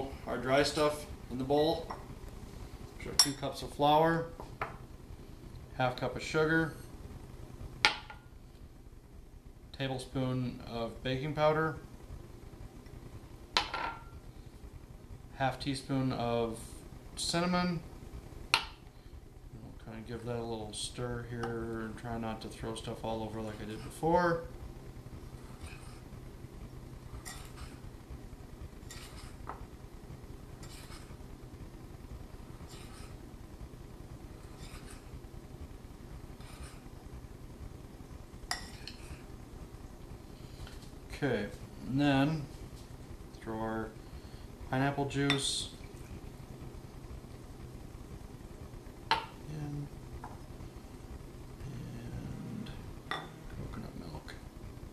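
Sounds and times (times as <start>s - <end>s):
faint low hum: 0.0s - 54.9s
spoon scraping flour in bowl: 27.2s - 27.8s, 28.8s - 29.5s, 30.6s - 31.2s, 32.6s - 33.2s, 34.4s - 35.2s, 36.4s - 36.9s.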